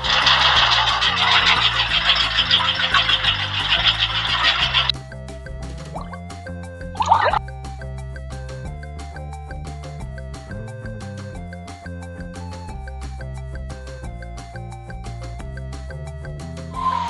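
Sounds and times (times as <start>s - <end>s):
toy washing machine buzzing rattle: 0.0s - 5.0s
background music: 0.0s - 17.0s.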